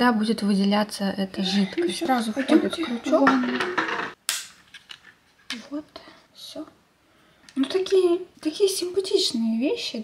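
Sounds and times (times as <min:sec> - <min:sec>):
sharp plastic snap: 0:04.2 - 0:05.0.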